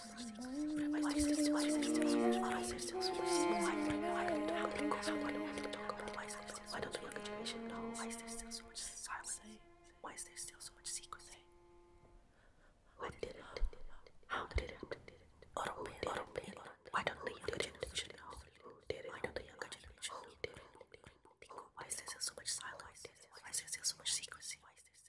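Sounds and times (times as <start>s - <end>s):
held musical note: 0.0s - 9.8s.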